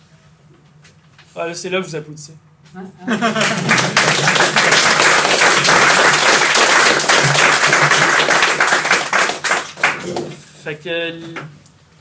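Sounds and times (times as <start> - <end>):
audience applauding: 3.2 - 10.4.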